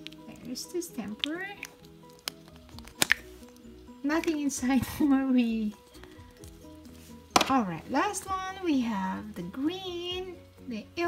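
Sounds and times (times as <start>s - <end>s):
soft background music: 0.0s - 11.0s
plastic cap clicks: 1.2s - 3.6s.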